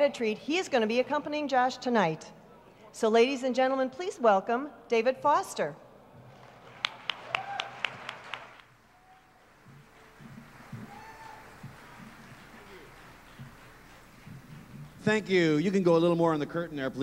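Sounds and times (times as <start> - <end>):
faint audience noise: 0.0 - 3.6, 5.8 - 17.0
hand clapping: 6.4 - 15.1.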